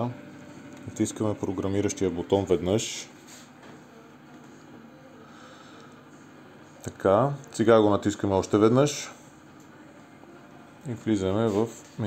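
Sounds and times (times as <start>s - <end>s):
vending machine hum: 0.0s - 12.0s.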